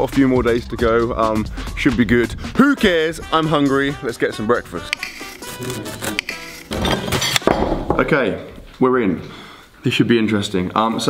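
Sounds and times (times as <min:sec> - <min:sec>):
background music: 0:00.0 - 0:08.1.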